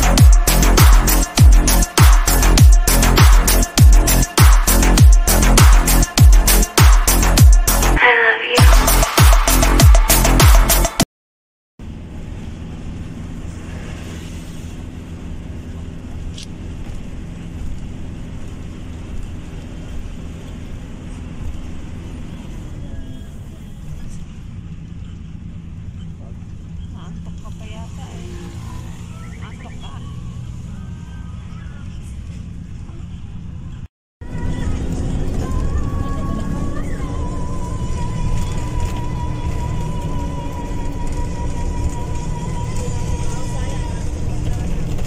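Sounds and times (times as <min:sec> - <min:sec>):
road noise: 0:00.0 - 0:11.0, 0:11.8 - 0:45.0
vehicle engine hum: 0:00.0 - 0:11.0, 0:11.8 - 0:45.0.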